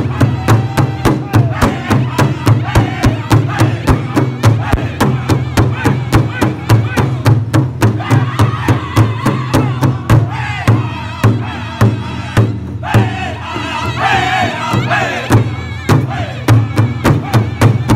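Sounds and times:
group singing high voices: 0.0s - 17.9s
large hide drum beat: 0.0s - 17.9s.

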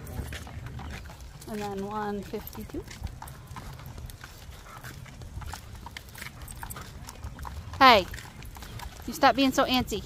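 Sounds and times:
wagon wheels rumbling on asphalt: 0.0s - 10.0s.

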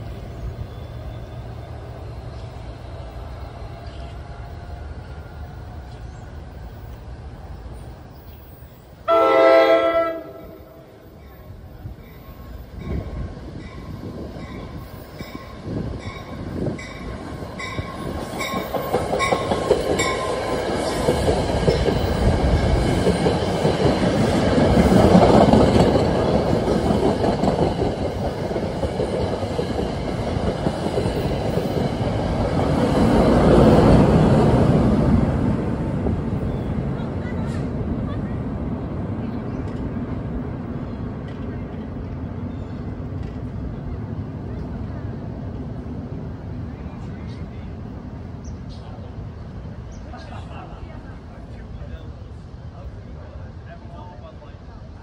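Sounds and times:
train horn blast: 9.0s - 11.0s
train bell ringing: 12.0s - 20.6s
train wheels clattering: 12.1s - 34.3s.

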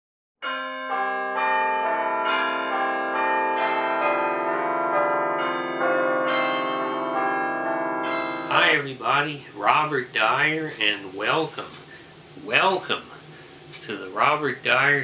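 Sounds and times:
peal of bells: 0.4s - 9.4s.

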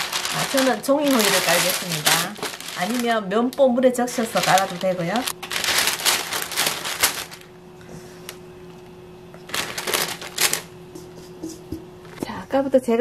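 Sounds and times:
parchment paper rustling: 0.0s - 8.4s, 9.4s - 11.4s
faint hum: 0.0s - 13.0s.

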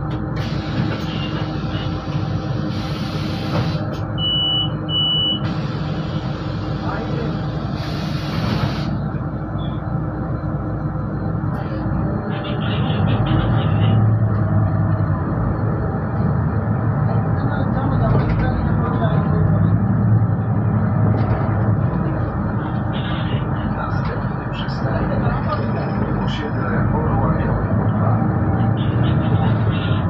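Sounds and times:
bus engine running: 0.0s - 30.0s.

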